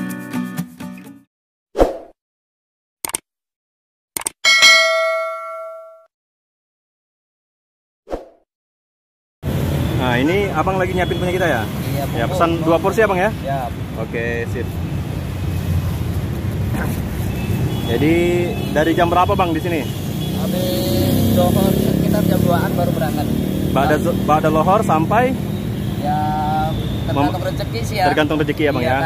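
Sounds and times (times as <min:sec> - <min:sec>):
bell chime ringing: 0:04.5 - 0:06.1
road traffic rumble: 0:09.4 - 0:29.0.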